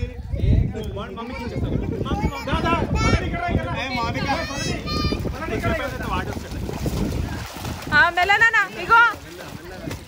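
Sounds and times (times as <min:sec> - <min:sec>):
pool water splashing: 0:00.0 - 0:10.0
wind buffeting microphone: 0:00.0 - 0:10.0
children's voices: 0:01.1 - 0:05.5.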